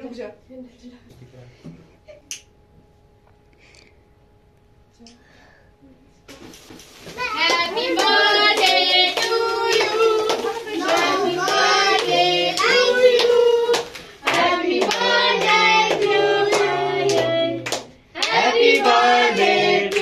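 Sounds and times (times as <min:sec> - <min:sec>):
children singing: 0:07.3 - 0:17.6
rhythmic hand-clapping: 0:07.3 - 0:20.0.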